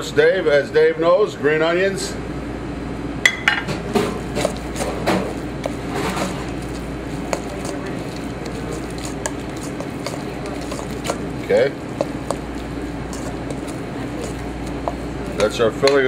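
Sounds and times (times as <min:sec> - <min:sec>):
steady low hum: 0:00.0 - 0:16.0
metal spoon scraping a bowl: 0:04.1 - 0:16.0.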